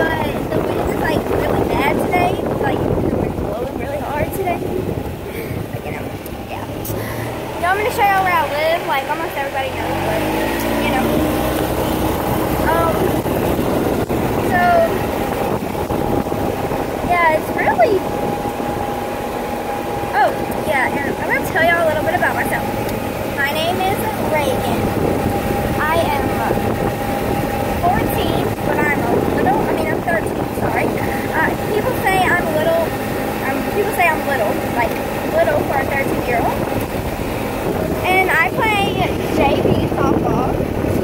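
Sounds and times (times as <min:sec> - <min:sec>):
people talking: 0:00.0 - 0:04.7, 0:05.3 - 0:11.9, 0:12.6 - 0:13.2, 0:14.2 - 0:15.1, 0:17.0 - 0:18.2, 0:20.1 - 0:26.8, 0:27.8 - 0:36.8, 0:37.9 - 0:41.0
golf cart motor running: 0:00.0 - 0:41.0
wind and road noise: 0:00.0 - 0:41.0.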